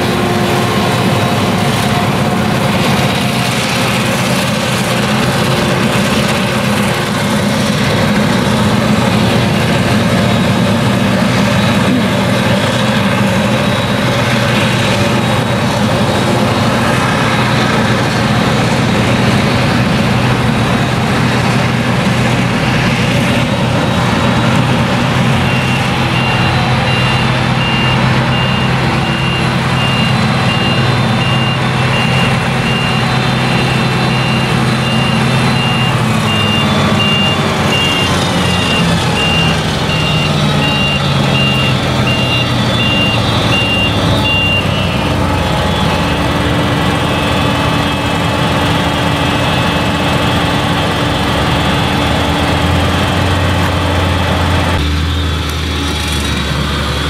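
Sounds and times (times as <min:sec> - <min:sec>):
harvester engine running: 0:00.0 - 0:57.0
reversing alarm beeping: 0:25.2 - 0:50.9.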